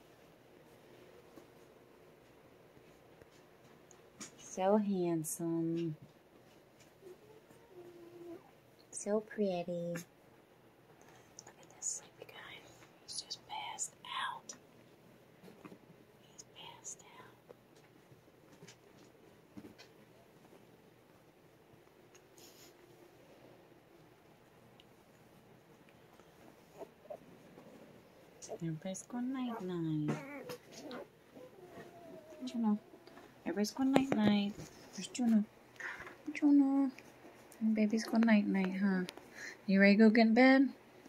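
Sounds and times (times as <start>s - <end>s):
woman whispering: 11.3s - 14.6s, 16.2s - 17.4s, 28.4s - 30.4s, 32.4s - 32.8s, 33.5s - 37.0s
puppies whimpering: 29.4s - 32.7s
puppy squeaks: 30.1s - 31.0s.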